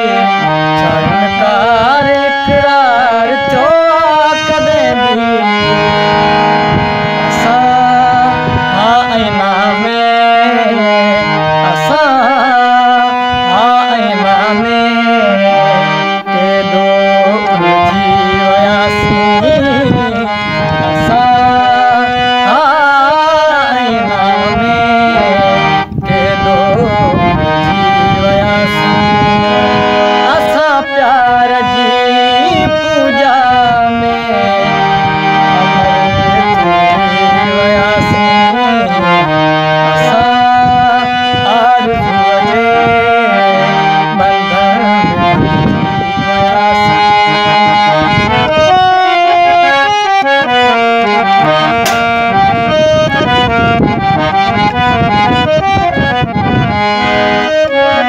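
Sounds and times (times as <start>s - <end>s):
man singing: 0.0s - 56.2s
harmonium playing chords: 0.0s - 58.0s.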